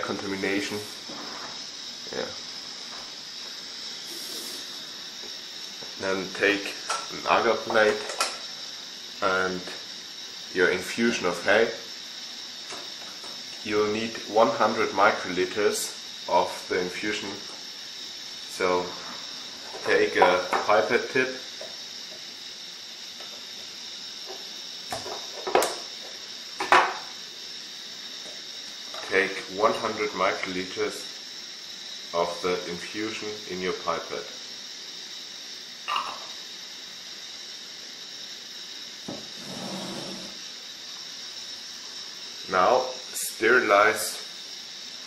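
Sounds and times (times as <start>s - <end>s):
gas burner hissing: 0.0s - 45.0s.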